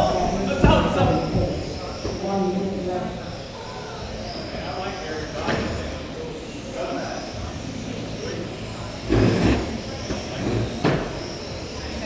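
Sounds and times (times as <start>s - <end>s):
faint high whine: 0.0s - 12.0s.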